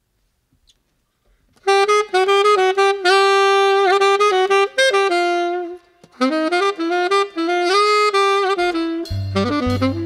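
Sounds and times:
jazz saxophone: 0:01.6 - 0:10.0.

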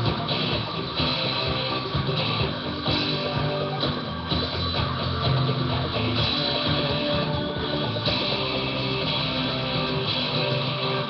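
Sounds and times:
guitar: 0:00.0 - 0:11.0
live band playing: 0:00.0 - 0:11.0
steady drum beat: 0:00.0 - 0:11.0.

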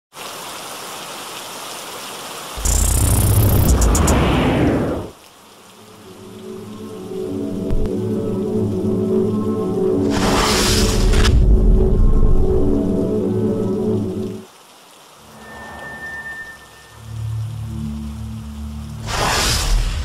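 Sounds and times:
rain-like hiss: 0:00.1 - 0:20.0
sustained musical drone: 0:05.8 - 0:14.4, 0:15.4 - 0:19.1.

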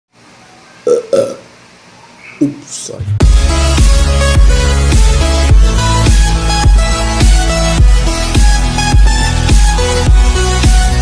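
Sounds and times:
man burping: 0:00.9 - 0:01.5.

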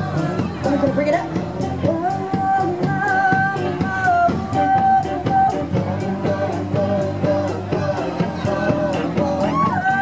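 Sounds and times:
drum kit steady beat: 0:00.0 - 0:10.0
guitar: 0:00.0 - 0:10.0.

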